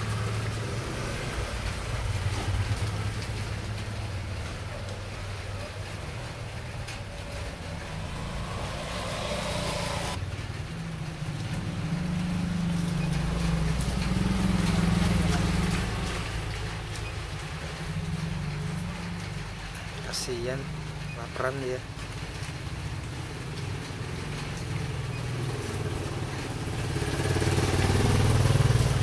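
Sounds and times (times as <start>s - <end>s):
vehicle engine rumbling: 0.0s - 29.0s.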